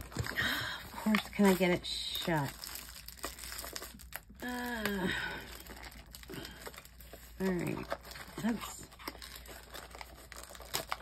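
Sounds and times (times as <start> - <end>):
crinkly packaging handled: 0.0 - 11.0.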